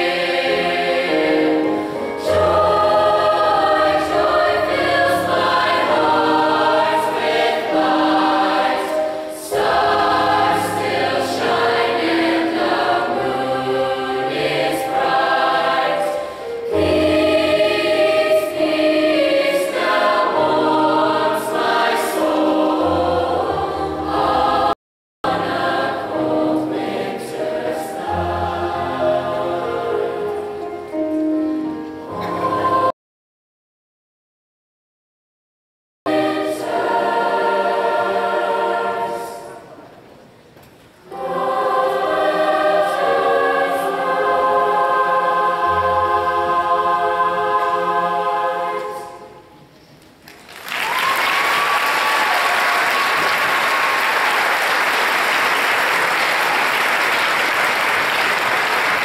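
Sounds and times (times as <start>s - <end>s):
mixed choir singing: 0.0s - 33.0s, 36.1s - 40.0s, 41.0s - 49.7s.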